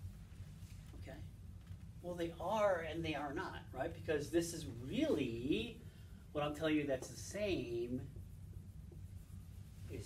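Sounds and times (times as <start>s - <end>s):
low room hum: 0.0s - 10.0s
marker writing on whiteboard: 6.6s - 10.0s.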